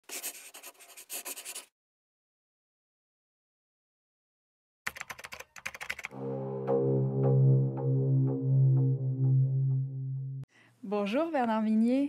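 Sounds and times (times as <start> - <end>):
pen scratching on paper: 0.0 - 1.7.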